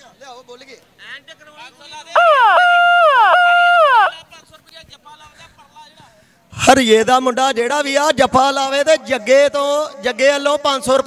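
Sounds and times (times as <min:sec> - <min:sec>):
man's high call over loudspeaker: 0:01.9 - 0:04.4.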